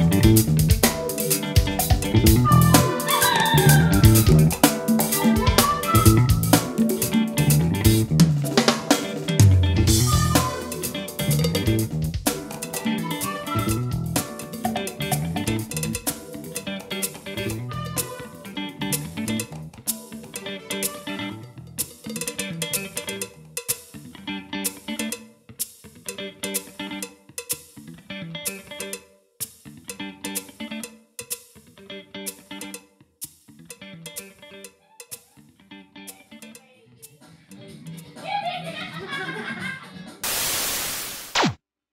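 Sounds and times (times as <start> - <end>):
bass guitar: 0.0 - 25.3, 27.8 - 28.9
electric guitar: 0.0 - 29.0, 29.6 - 31.0, 31.6 - 32.8, 33.5 - 34.7
drum kit with hi-hat: 0.0 - 35.4
fast downward pitch sweep: 2.0 - 19.3
white-noise static: 40.2 - 41.6.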